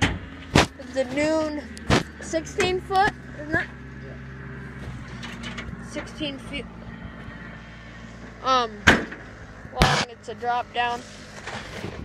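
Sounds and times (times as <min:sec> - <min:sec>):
tractor diesel engine idling: 0:00.0 - 0:12.0.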